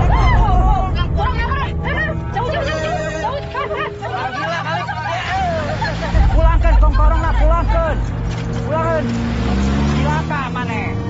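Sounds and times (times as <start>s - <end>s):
people shouting excitedly: 0.0s - 6.1s
car engine rumble: 0.0s - 11.0s.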